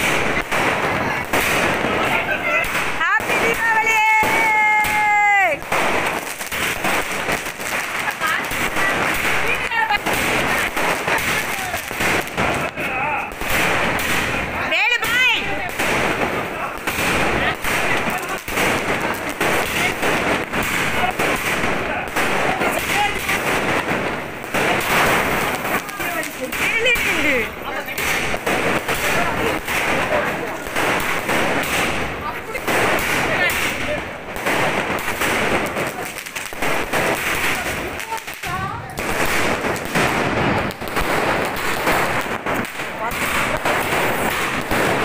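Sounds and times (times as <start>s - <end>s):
firecrackers crackling and popping: 0.0s - 45.0s.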